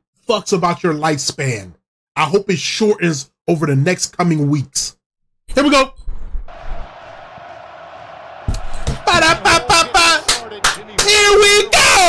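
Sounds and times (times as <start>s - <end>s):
stadium crowd roar: 6.5s - 12.0s
man shouting excitedly: 9.0s - 12.0s.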